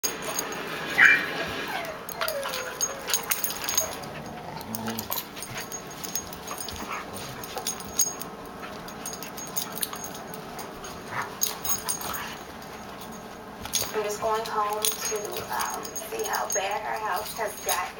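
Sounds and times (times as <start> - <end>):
dogs play-fighting: 0.0 - 17.9
dog yipping: 0.9 - 4.2
dog whining: 0.9 - 8.3.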